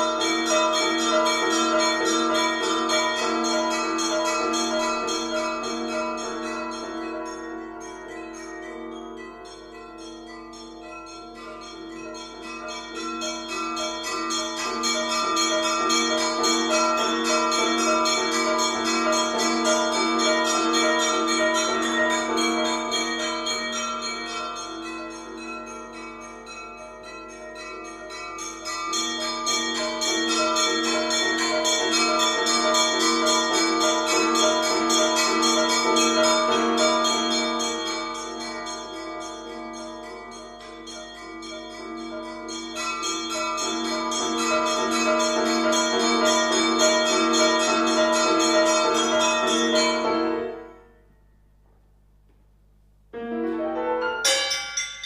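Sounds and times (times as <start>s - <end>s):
piano and percussion chamber music: 0.0s - 50.9s, 53.2s - 55.0s.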